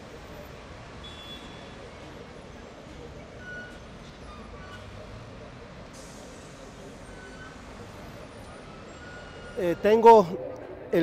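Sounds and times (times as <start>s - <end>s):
crowd voices: 0.0s - 11.0s
traffic rumble: 0.0s - 11.0s.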